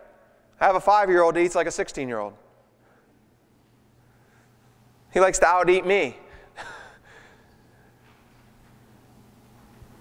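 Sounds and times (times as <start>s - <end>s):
man speaking: 0.6s - 2.4s, 5.1s - 6.3s.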